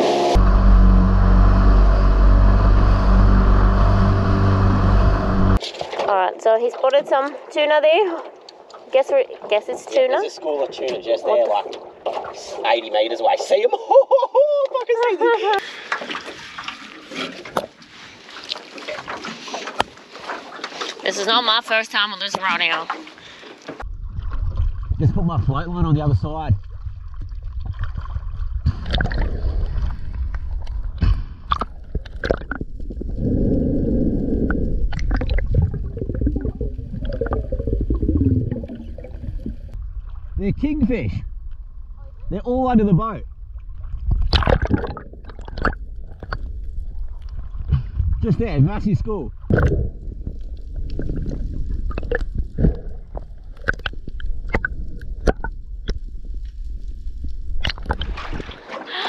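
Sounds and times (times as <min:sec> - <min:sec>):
muffled underwater rush: 0:00.0 - 0:13.6, 0:15.6 - 0:59.0
sea water sloshing and gurgling: 0:05.6 - 0:13.8, 0:15.6 - 0:40.7, 0:43.2 - 0:48.6, 0:49.2 - 0:59.0.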